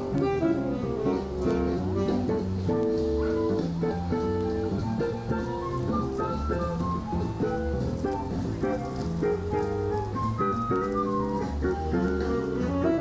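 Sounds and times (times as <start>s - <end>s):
small jazz band playing: 0.0s - 13.0s.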